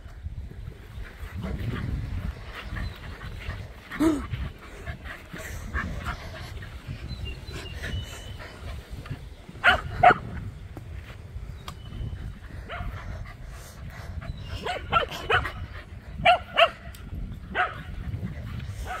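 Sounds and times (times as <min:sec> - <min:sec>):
dog barking: 0:09.6 - 0:10.2, 0:14.6 - 0:15.6, 0:16.2 - 0:16.8, 0:17.5 - 0:17.9.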